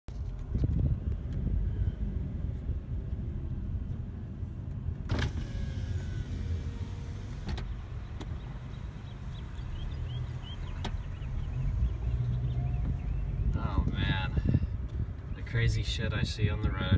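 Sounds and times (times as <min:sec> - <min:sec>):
car cabin rumble: 0:00.1 - 0:15.8.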